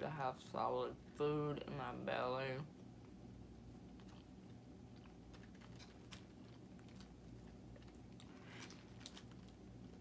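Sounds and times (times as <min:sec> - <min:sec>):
faint chewing: 0:02.8 - 0:10.0.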